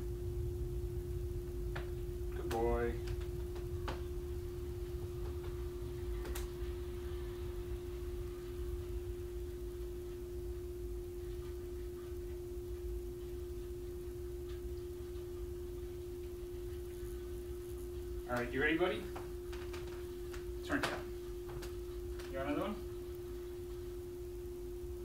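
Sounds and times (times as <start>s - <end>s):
low background rumble: 0.0s - 25.0s
steady single-pitched hum: 0.0s - 25.0s.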